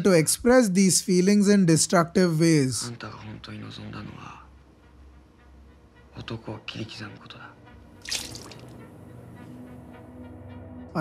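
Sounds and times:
man speaking: 0:00.0 - 0:04.2
water splashing from glass: 0:08.0 - 0:08.8.

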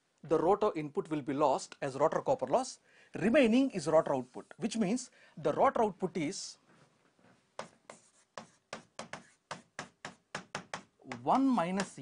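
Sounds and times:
pen tapping and stroking on board: 0:07.5 - 0:12.0.

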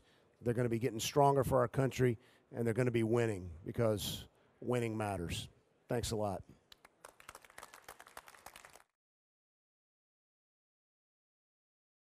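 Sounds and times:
light scattered applause: 0:06.7 - 0:09.0.

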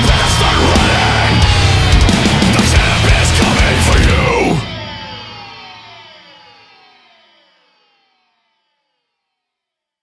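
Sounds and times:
heavy metal chord ringing out: 0:00.3 - 0:06.8.

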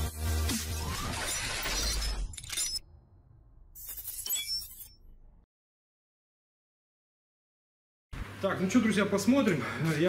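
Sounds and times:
glass shattering: 0:03.8 - 0:05.1.

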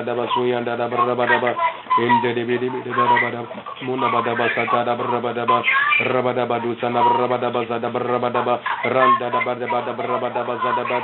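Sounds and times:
man praying aloud: 0:00.0 - 0:11.0.

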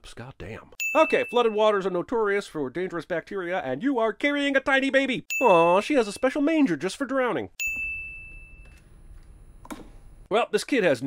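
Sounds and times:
bell-like ding: 0:00.8 - 0:01.6, 0:05.3 - 0:05.8, 0:07.6 - 0:08.8.

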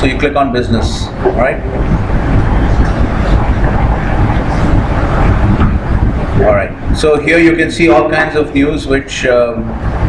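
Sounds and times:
low rumbling noise: 0:00.0 - 0:10.0.

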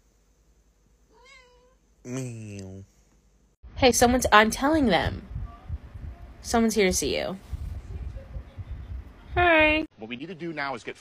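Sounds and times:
cat meowing faintly: 0:01.1 - 0:01.8.

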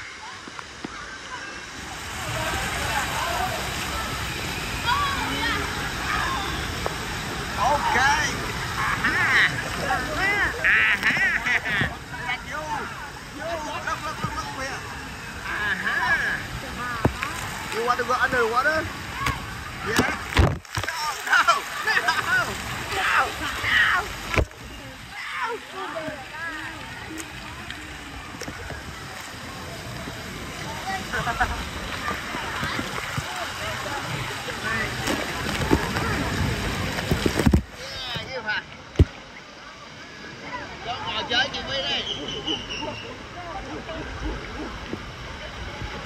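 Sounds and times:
children shouting and squealing: 0:00.0 - 0:07.8
busy pool noise: 0:00.0 - 0:46.0
voices calling out: 0:00.0 - 0:46.0.

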